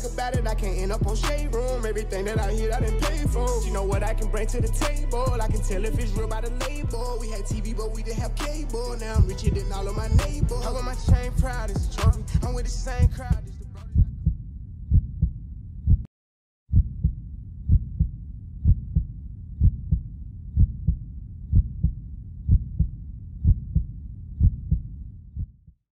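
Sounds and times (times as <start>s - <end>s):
heartbeat thumps: 9.0s - 16.1s, 16.7s - 25.8s.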